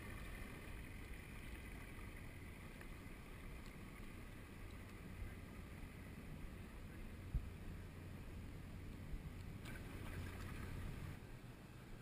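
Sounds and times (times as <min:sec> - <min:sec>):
paddle in water: 0:00.0 - 0:11.4
faint steady hum: 0:00.0 - 0:12.0
steady low rumble: 0:00.0 - 0:12.0.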